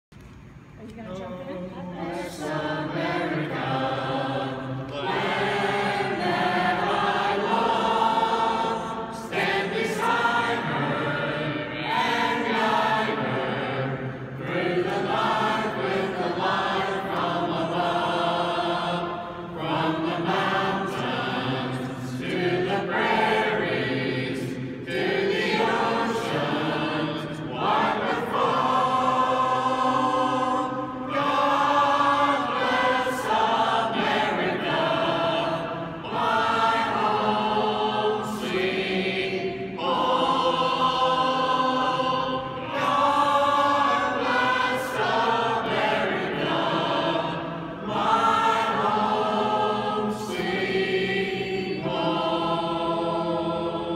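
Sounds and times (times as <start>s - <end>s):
group singing together: 1.8s - 53.9s.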